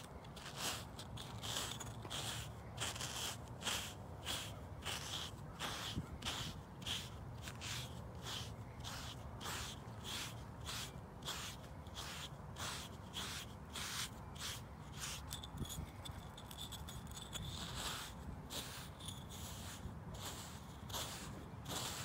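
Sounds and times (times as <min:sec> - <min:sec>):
grooming block scraping horse hair: 0:00.0 - 0:22.0.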